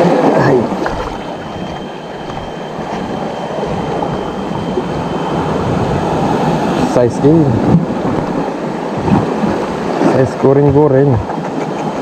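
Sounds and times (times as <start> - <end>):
surf on rocky shore: 0.0 - 12.0
wind on microphone: 0.0 - 12.0.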